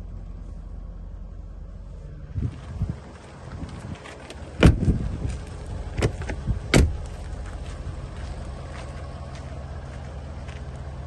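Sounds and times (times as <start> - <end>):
low steady hum: 0.0 - 11.0
car door heavy thud: 4.6 - 5.0, 5.9 - 7.0.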